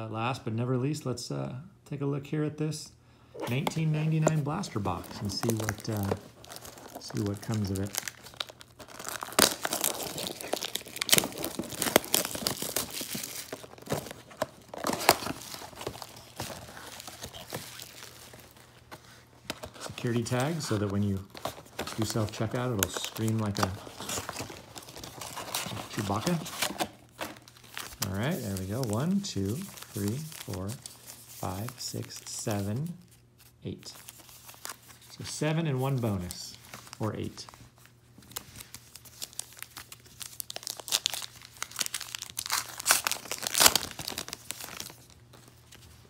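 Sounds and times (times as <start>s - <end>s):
cardboard box being opened: 3.4s - 22.3s, 22.9s - 28.0s
paper rustling and scraping: 3.4s - 32.8s
wrapper crinkling and tearing: 3.4s - 35.2s, 35.8s - 46.0s.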